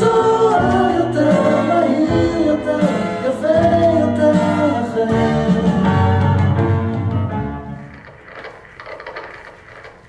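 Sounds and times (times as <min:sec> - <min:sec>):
music: 0:00.0 - 0:09.8.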